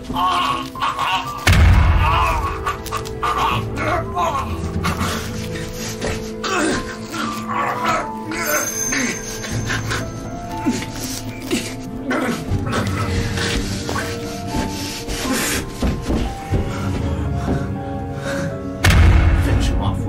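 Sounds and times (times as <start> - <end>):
sustained horror film music: 0.0 - 20.0.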